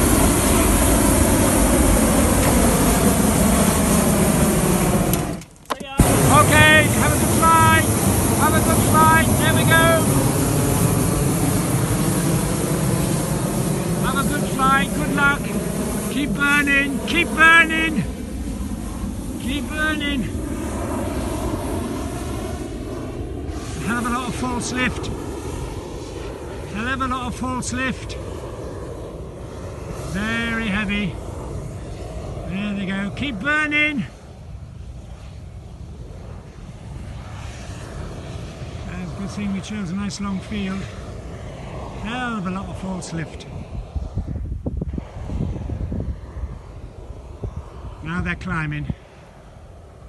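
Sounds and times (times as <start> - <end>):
propane burner roaring: 0.0 - 50.0
wind buffeting microphone: 0.0 - 50.0.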